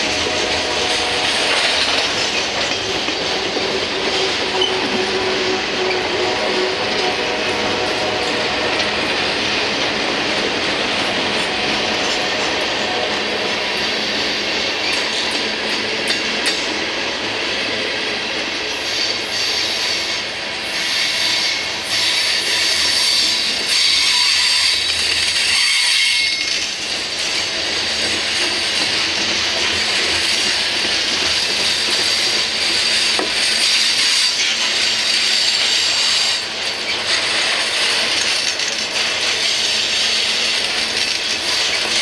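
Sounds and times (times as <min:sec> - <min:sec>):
freight train wheels rumbling: 0:00.0 - 0:42.0
wheels clicking over rail joints: 0:24.8 - 0:42.0.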